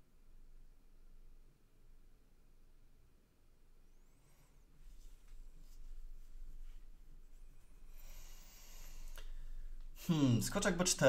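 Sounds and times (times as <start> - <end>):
soft rustling of hand and clothing: 3.7 - 11.0.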